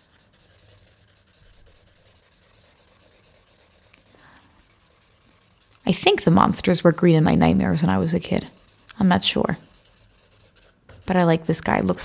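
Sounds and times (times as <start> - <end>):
felt-tip marker scratching on paper: 0.0 - 12.0.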